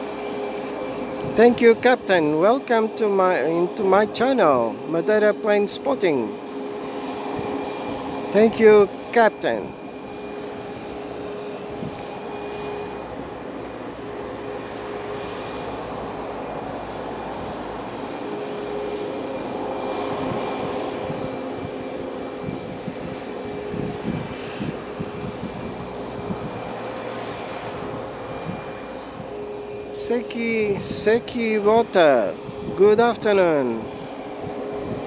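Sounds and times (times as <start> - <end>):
jet engines idling: 0.0 - 35.0.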